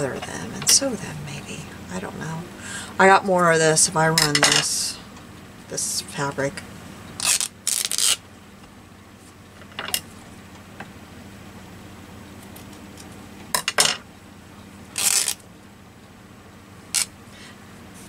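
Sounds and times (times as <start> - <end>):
fabric ripping: 7.2 - 8.2, 15.0 - 15.4.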